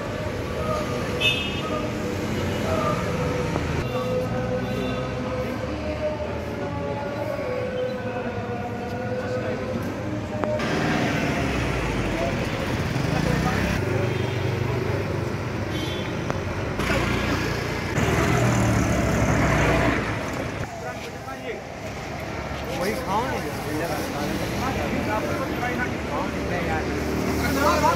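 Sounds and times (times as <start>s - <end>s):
motorbikes passing: 0.0s - 7.5s, 9.4s - 15.7s, 16.4s - 27.9s
indistinct voices: 0.0s - 15.4s
traffic passing: 0.0s - 27.9s.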